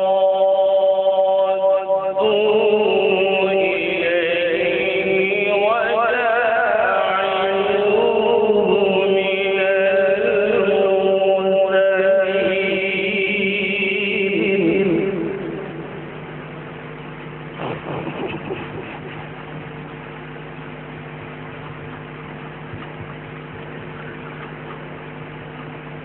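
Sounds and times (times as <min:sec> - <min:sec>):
man reciting melodically: 0:00.0 - 0:15.9.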